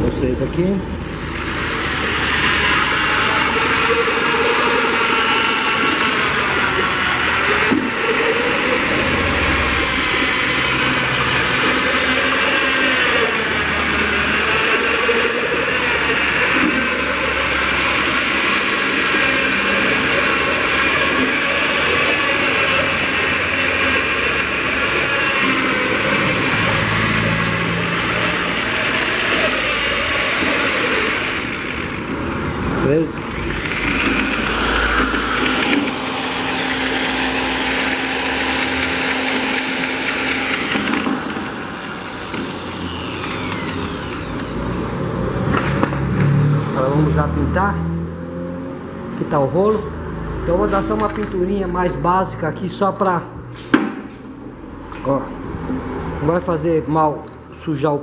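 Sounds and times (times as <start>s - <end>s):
electric paint mixer whining: 0.0s - 47.1s.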